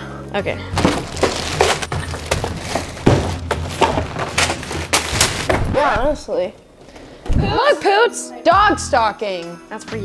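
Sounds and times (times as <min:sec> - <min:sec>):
boxes knocking and dropping: 0:00.7 - 0:06.2
plastic bags rustling: 0:00.7 - 0:06.2.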